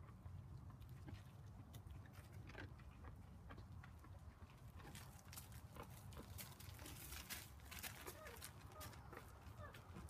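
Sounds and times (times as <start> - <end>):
hooves stepping on gravel: 1.0 - 10.0.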